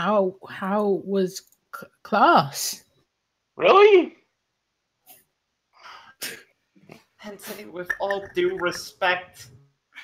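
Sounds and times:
person breathing: 5.8 - 6.2.

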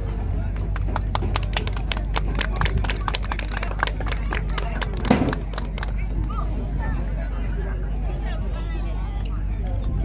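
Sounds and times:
audience applause: 0.6 - 6.4.

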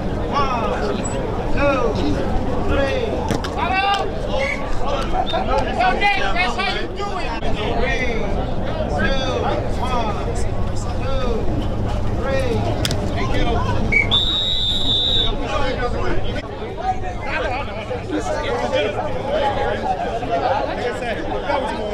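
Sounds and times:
people talking and calling out: 0.0 - 21.9
referee's whistle: 13.9 - 15.4.

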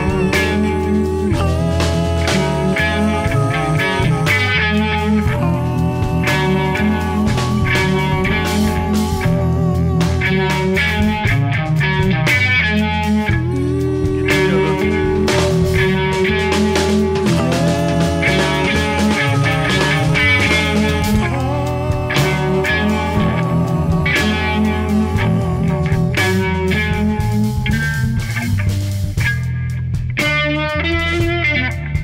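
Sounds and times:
bass guitar: 0.0 - 32.0
drums: 0.0 - 32.0
electric guitar: 0.0 - 32.0.

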